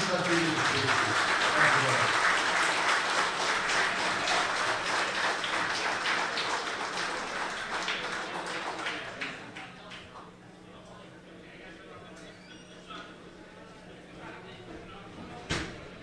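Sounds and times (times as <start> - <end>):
audience applauding: 0.0 - 10.1.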